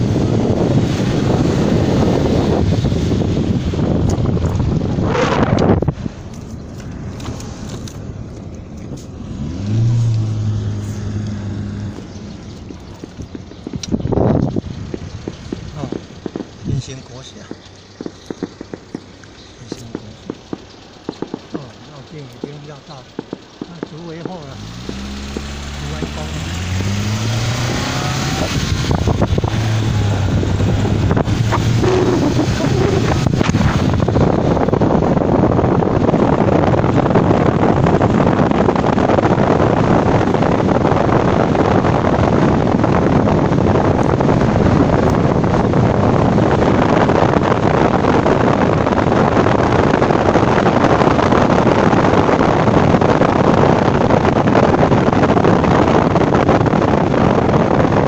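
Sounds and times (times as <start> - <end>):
car engine hum: 0.0 - 58.0
wind and road noise: 0.0 - 58.0.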